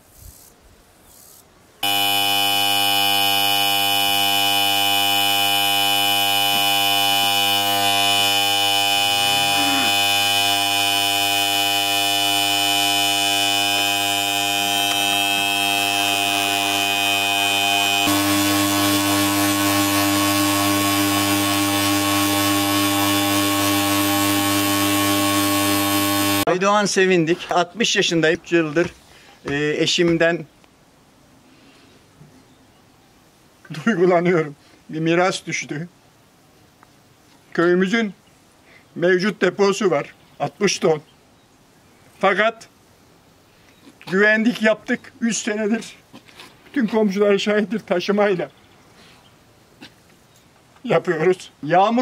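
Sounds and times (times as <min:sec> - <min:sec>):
electronic buzzing drone: 0:01.8 - 0:26.5.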